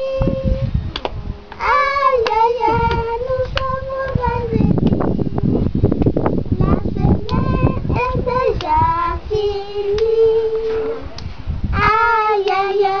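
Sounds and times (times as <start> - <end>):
children singing: 1.6 - 4.8, 11.8 - 13.0.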